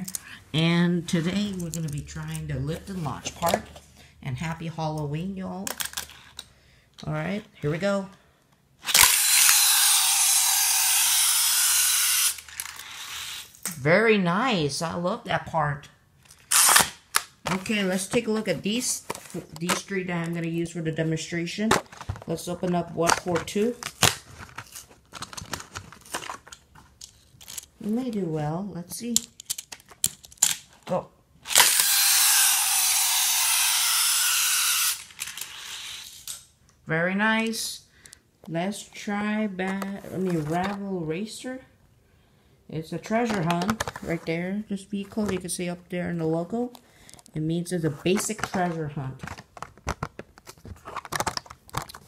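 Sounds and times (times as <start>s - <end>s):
toy motorized lift buzzing: 8.8s - 13.6s, 31.5s - 36.4s.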